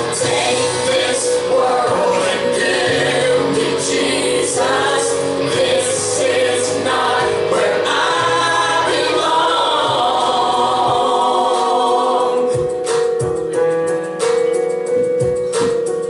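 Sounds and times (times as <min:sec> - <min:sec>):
gospel singing with accompaniment: 0:00.0 - 0:13.7.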